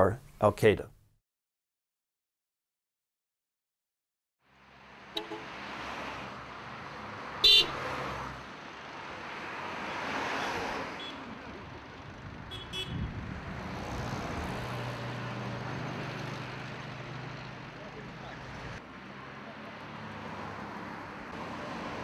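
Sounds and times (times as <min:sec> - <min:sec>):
traffic rumble: 0:04.5 - 0:22.0
horn toots: 0:05.2 - 0:05.5, 0:07.4 - 0:07.8, 0:12.5 - 0:13.1.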